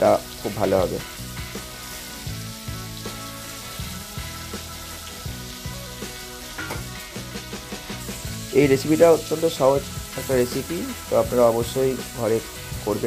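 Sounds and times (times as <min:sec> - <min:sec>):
background music: 0:00.0 - 0:13.0
prawns sizzling in hot oil: 0:00.0 - 0:13.0.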